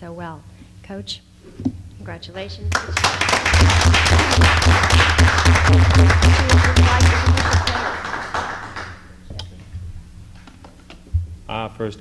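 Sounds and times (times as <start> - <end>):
audience applauding: 2.7 - 9.2.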